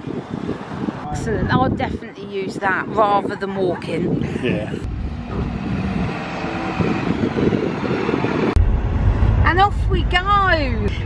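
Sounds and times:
street traffic: 0.0s - 11.0s
bus engine running: 4.9s - 10.9s.

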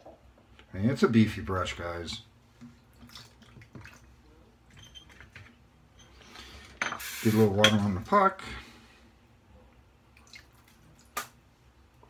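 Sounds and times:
water dripping into a bowl: 10.1s - 11.3s.

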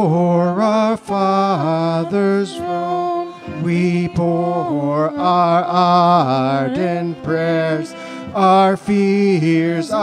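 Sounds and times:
violin: 0.0s - 10.0s
congregation singing a hymn: 0.3s - 10.0s.

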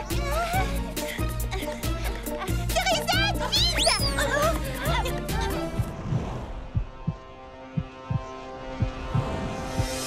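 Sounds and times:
heartbeat thumps: 1.3s - 10.0s.

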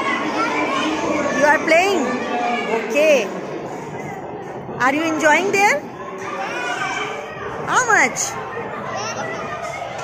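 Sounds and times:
children chattering and calling: 0.0s - 10.0s.

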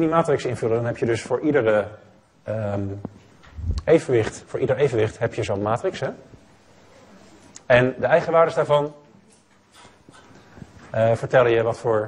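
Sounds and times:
man speaking: 0.0s - 3.1s, 3.8s - 6.3s, 7.7s - 9.1s, 10.9s - 12.0s.

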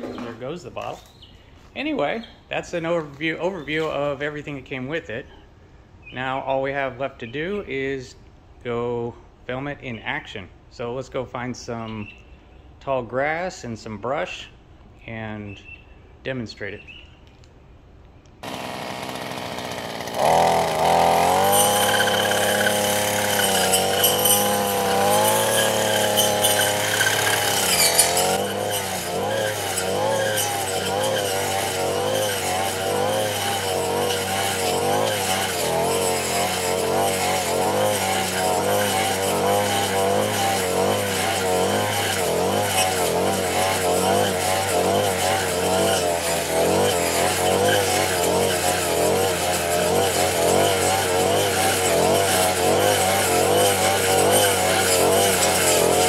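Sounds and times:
brush cutter engine revving: 18.4s - 56.0s.

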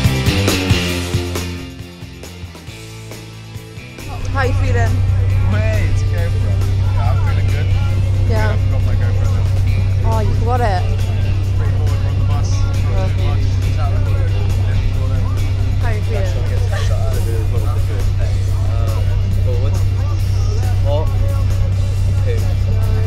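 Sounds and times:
coach engine and road noise: 0.0s - 23.0s.

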